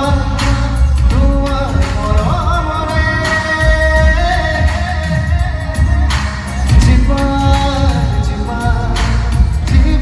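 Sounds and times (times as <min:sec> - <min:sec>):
band music with heavy bass: 0:00.0 - 0:10.0
man singing through microphone: 0:00.0 - 0:10.0.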